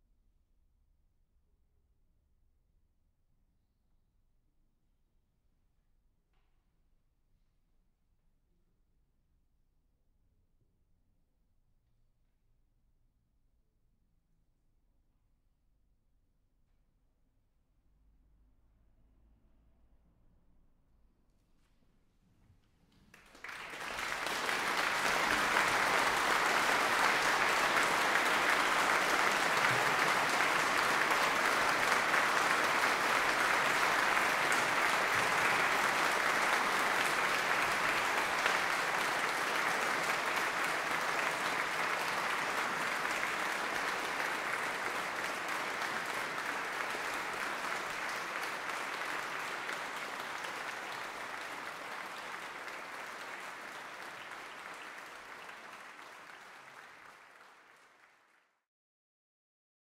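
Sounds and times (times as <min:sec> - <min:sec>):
audience applauding: 0:23.1 - 0:58.6.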